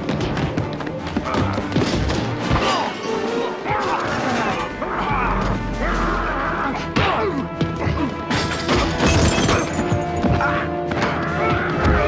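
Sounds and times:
orchestral fight music: 0.0s - 12.0s.

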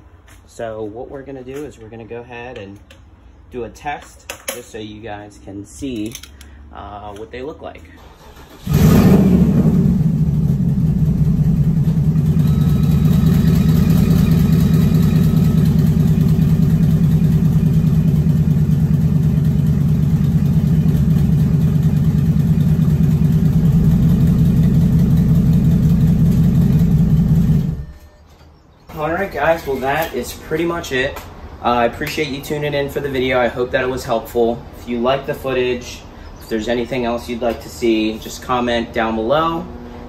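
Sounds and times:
car engine starting and idling: 7.9s - 28.0s.

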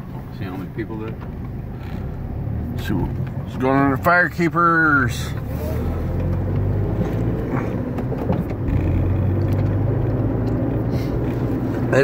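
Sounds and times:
car driving from inside cabin: 0.0s - 12.0s.

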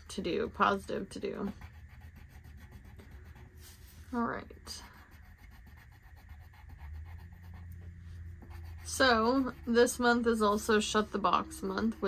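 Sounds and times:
low steady hum: 0.0s - 12.0s
pencil scratching on paper: 0.1s - 12.0s.

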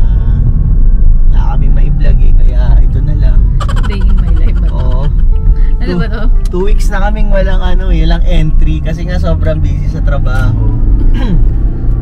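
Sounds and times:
car cabin road rumble: 0.0s - 12.0s
person speaking: 3.8s - 6.6s.

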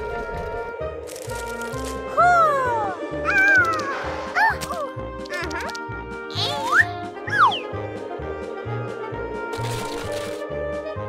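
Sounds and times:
cartoon music with steady beat: 2.1s - 9.8s.

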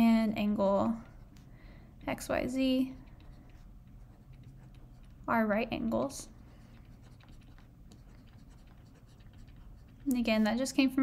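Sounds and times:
stylus writing on tablet: 0.0s - 11.0s.

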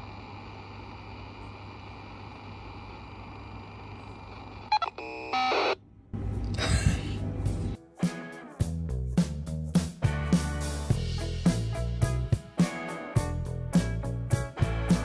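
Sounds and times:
low room hum: 0.0s - 7.8s.

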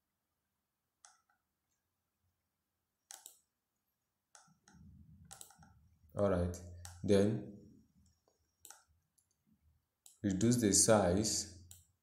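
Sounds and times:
computer mouse clicks: 1.0s - 1.4s, 3.1s - 3.5s, 4.3s - 5.8s, 6.7s - 7.1s, 8.0s - 9.4s, 10.0s - 10.3s, 11.6s - 12.0s.

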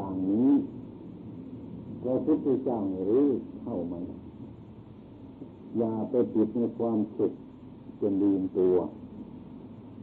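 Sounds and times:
man speaking: 0.0s - 0.8s, 2.0s - 4.2s, 5.7s - 7.4s, 8.0s - 9.0s
low hum and hiss: 0.0s - 10.0s.

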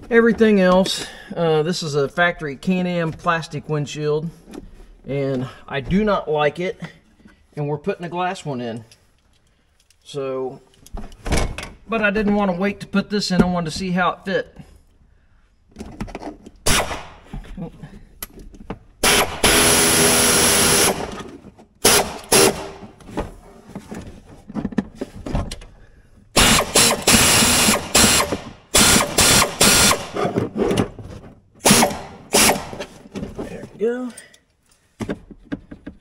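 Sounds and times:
power drill driving screws into plastic: 19.0s - 22.9s, 26.4s - 30.4s, 31.6s - 33.0s.

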